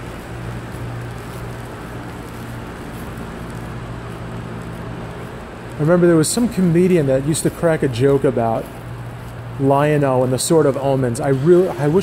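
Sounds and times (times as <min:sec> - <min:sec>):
low mechanical hum: 0:00.0 - 0:12.0
noisy rush: 0:00.0 - 0:12.0.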